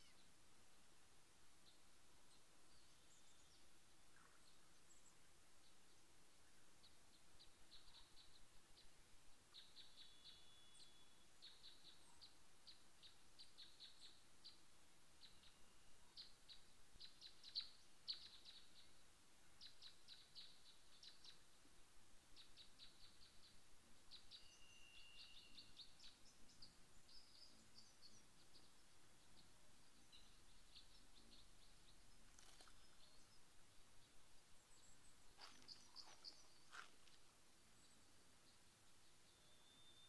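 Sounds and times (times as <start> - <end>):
birds chirping: 24.1 - 40.0.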